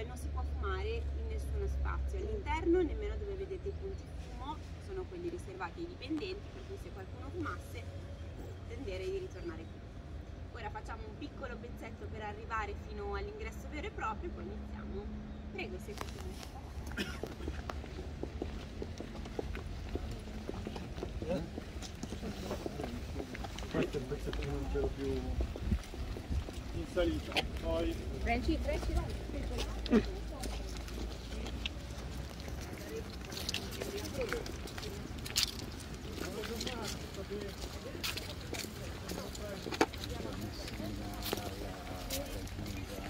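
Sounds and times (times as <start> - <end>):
people chattering: 0.0 - 43.0
faint voices: 13.5 - 43.0
footsteps on pavement: 15.8 - 43.0.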